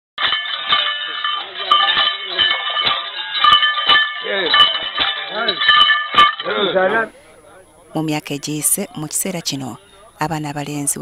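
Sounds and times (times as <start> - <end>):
leg bells jangling: 0.2 - 7.1.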